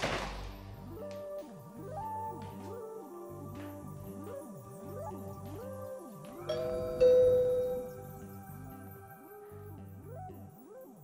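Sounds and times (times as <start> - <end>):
light background music: 0.0 - 11.0
two-tone doorbell chime: 6.5 - 8.3.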